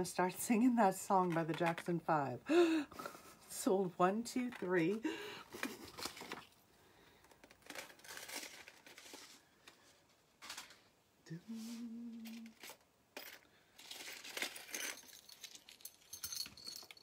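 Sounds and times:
packaging crinkling and rustling: 0:05.5 - 0:10.9.

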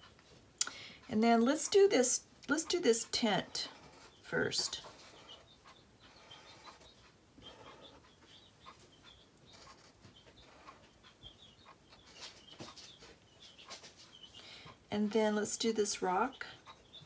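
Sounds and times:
marker scratching on paper: 0:03.2 - 0:08.0, 0:09.5 - 0:10.9.

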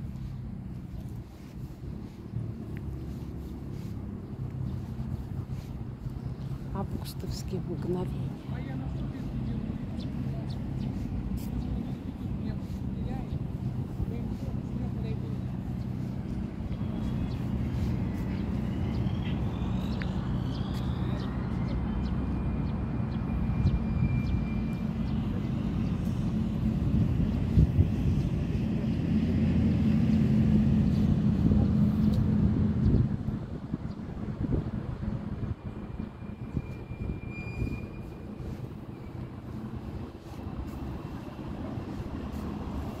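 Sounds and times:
low engine rumble: 0:00.0 - 0:43.0
faint high whistles: 0:16.7 - 0:25.4, 0:36.0 - 0:39.3.

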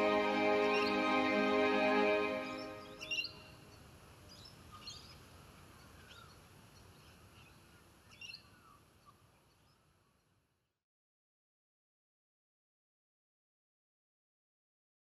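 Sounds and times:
held music chord: 0:00.0 - 0:03.3
low background hiss: 0:00.0 - 0:10.8
bird chirps: 0:02.4 - 0:03.6.

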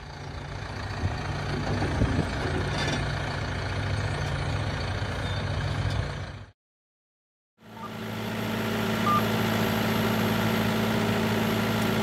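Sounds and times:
tractor diesel engine running: 0:00.0 - 0:06.5, 0:07.6 - 0:12.0.

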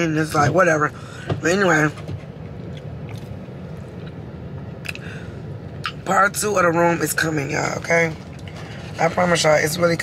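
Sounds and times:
car hum: 0:00.0 - 0:10.0
person chewing food: 0:02.6 - 0:04.2.

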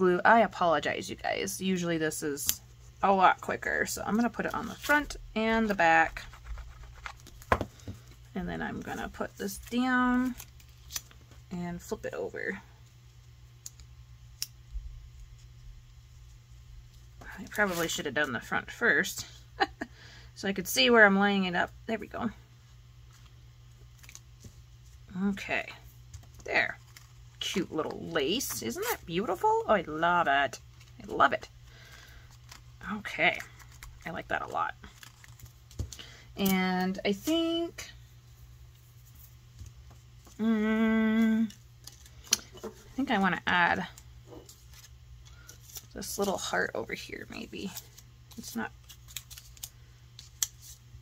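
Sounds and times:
paper handling: 0:04.1 - 0:11.3, 0:30.7 - 0:36.1, 0:47.6 - 0:50.8.

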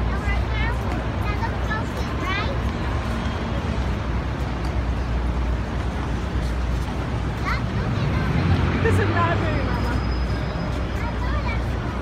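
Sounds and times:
low traffic rumble: 0:00.0 - 0:12.0
voices of passersby: 0:00.0 - 0:12.0.

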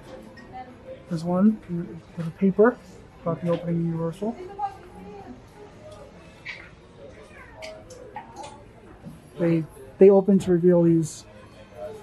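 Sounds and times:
faint voices in shop: 0:00.0 - 0:12.0.

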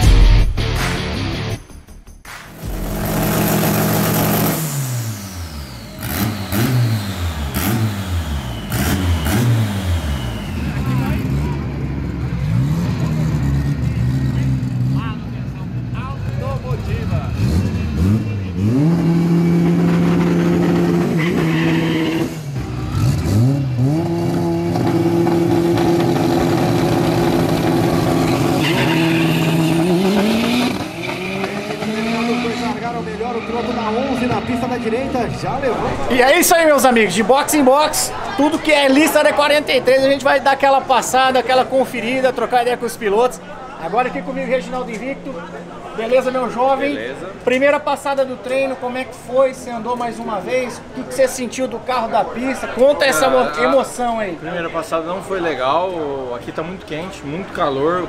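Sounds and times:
car engine revving: 0:02.3 - 0:47.8.

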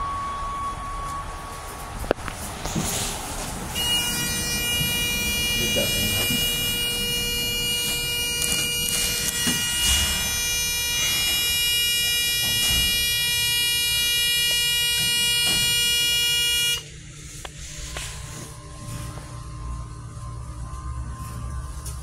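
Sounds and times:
elevator buzzer tone: 0:00.0 - 0:01.7, 0:03.7 - 0:17.0
elevator door sliding shut: 0:09.2 - 0:11.5.

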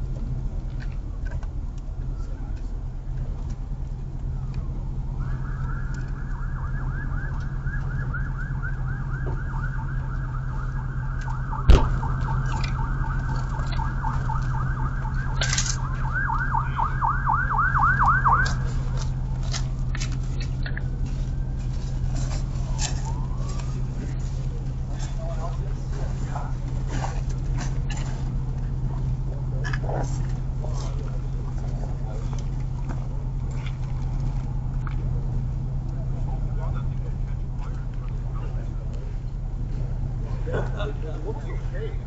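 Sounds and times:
steady low hum: 0:00.0 - 0:42.0
emergency siren warbling: 0:04.2 - 0:26.6
sharp knock: 0:11.7 - 0:12.1.

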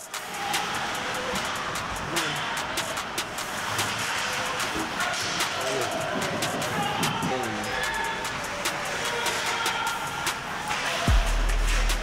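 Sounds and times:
hockey sticks and puck clacking: 0:00.1 - 0:12.0
skate blades scraping ice: 0:00.2 - 0:11.1.

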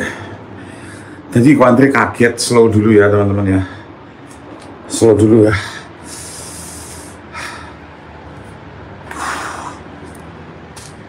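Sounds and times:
man breathing: 0:00.0 - 0:01.3, 0:03.6 - 0:04.5, 0:05.5 - 0:10.2.

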